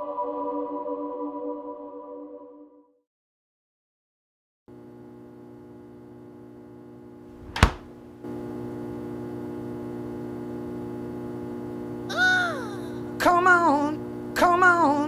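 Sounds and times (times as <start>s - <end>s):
loud thunk: 7.4s - 7.9s.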